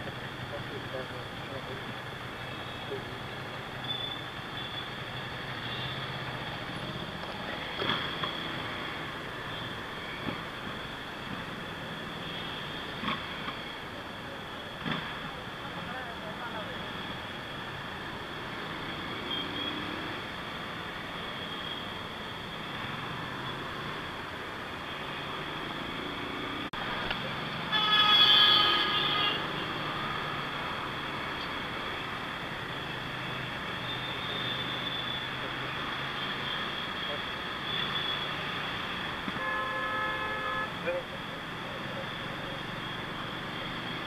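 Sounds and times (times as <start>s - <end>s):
vehicle horn: 27.7s - 29.6s, 39.4s - 40.9s.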